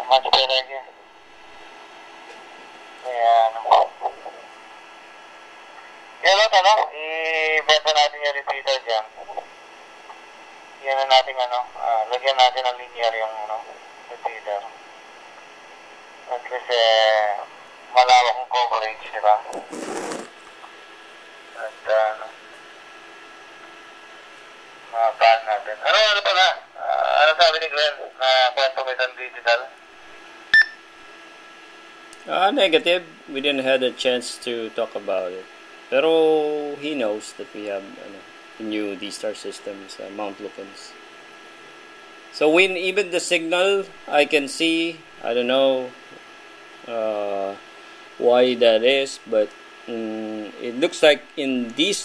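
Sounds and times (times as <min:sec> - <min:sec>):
thin voice over radio speaker: 0:00.0 - 0:01.0, 0:03.0 - 0:04.5, 0:06.2 - 0:09.5, 0:10.8 - 0:14.8, 0:16.3 - 0:20.1, 0:21.6 - 0:22.4, 0:24.9 - 0:29.8.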